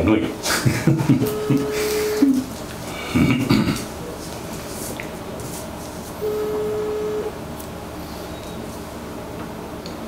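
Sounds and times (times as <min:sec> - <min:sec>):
telephone ring-back tone: 0:01.2 - 0:02.4, 0:06.2 - 0:07.3.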